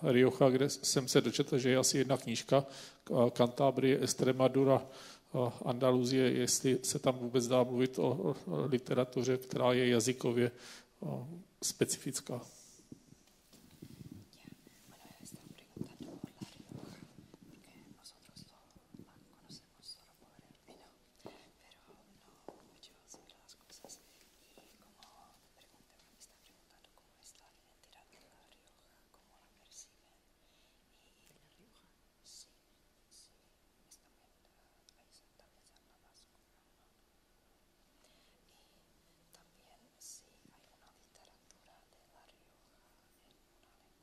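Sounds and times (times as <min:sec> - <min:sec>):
person whispering: 0:00.0 - 0:37.0, 0:38.1 - 0:44.0.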